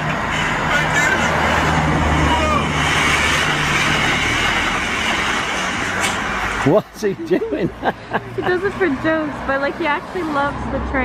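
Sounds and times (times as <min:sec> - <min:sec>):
traffic noise: 0:00.0 - 0:11.0
vehicle engine humming: 0:00.0 - 0:11.0.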